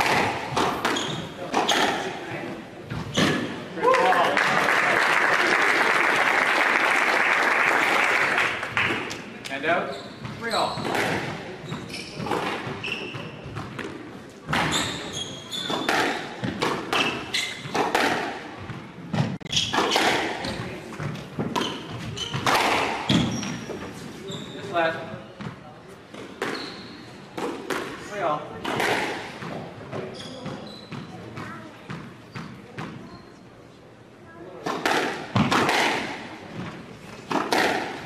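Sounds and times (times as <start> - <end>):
ball hitting court walls: 0.0 - 2.2, 2.9 - 3.6, 10.2 - 23.8, 25.4 - 26.8, 27.4 - 33.0, 34.6 - 38.0
squash ball struck by rackets: 0.0 - 2.2, 10.8 - 11.5, 15.6 - 18.4, 19.1 - 23.6, 27.4 - 28.0, 28.6 - 30.6, 34.6 - 38.0
shoes squeaking on wooden floor: 0.5 - 3.5, 9.7 - 13.7, 14.5 - 17.9, 18.6 - 25.2, 26.3 - 27.1, 29.9 - 31.6.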